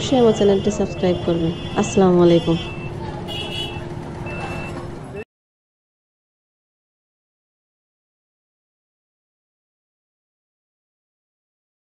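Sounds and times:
low street rumble: 0.0 - 5.2
short high-pitched beeps: 2.4 - 3.0, 3.7 - 4.8.

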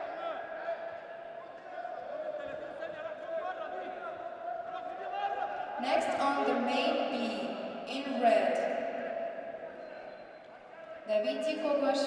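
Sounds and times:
indistinct voices echoing: 0.0 - 12.0
public-address announcer speaking: 5.8 - 9.1, 10.9 - 12.0.

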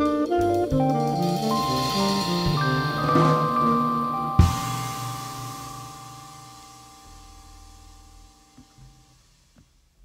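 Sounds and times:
jazz band final chord ringing: 0.0 - 8.5
cymbal wash: 0.4 - 9.6.

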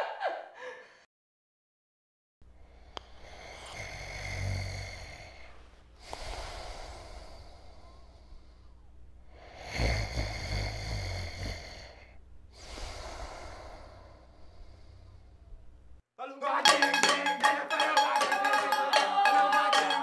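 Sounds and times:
long breath: 2.6 - 15.4
man snoring: 3.2 - 5.5, 9.4 - 12.1.

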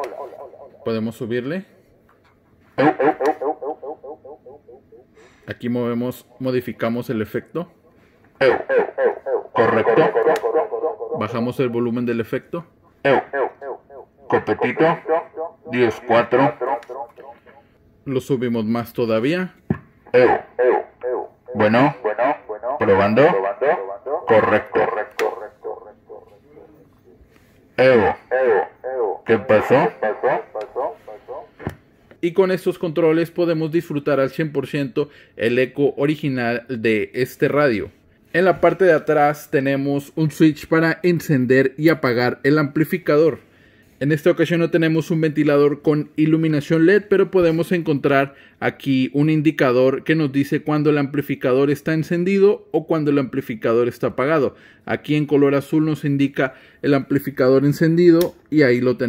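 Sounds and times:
radio echo repeats: 0.0 - 1.0, 2.8 - 5.0, 8.4 - 11.8, 13.0 - 17.6, 20.1 - 26.9, 27.8 - 31.7.

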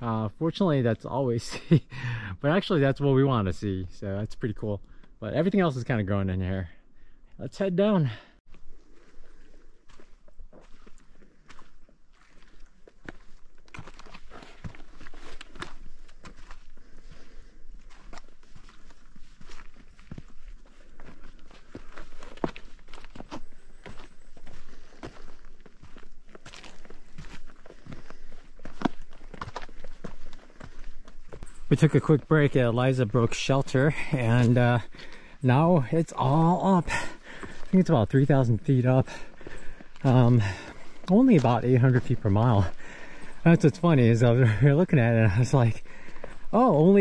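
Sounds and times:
footsteps crunching on gravel trail: 8.5 - 47.0.

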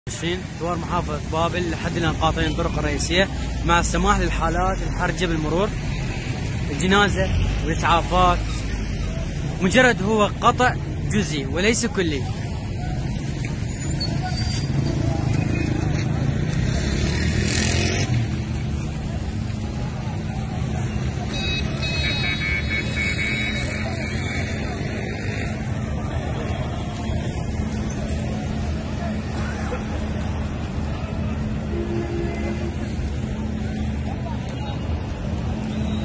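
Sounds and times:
vehicle engines humming: 0.0 - 36.0
people's voices: 0.1 - 36.0.

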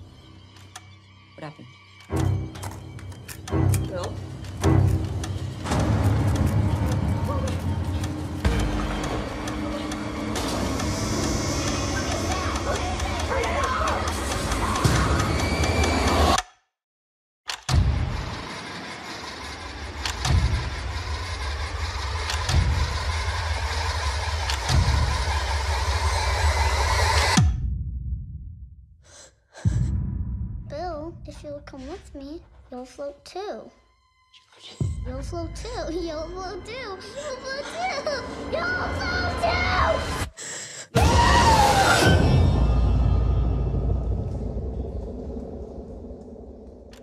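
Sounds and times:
low rumbling drone: 41.0 - 47.0.

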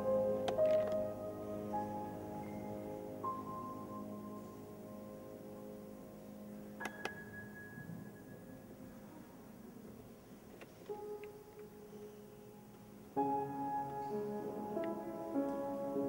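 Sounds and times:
soft grand piano notes: 0.0 - 16.0.

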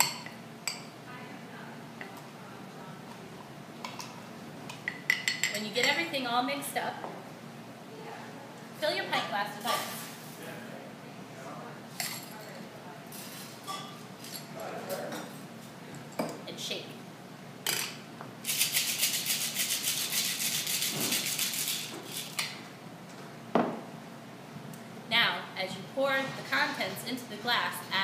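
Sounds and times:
ice rattling in cocktail shaker: 18.5 - 22.4.

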